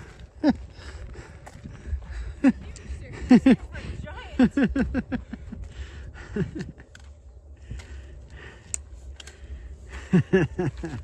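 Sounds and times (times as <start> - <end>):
people laughing: 2.4 - 6.9, 9.9 - 11.0
trekking poles clicking on stone: 6.5 - 11.0.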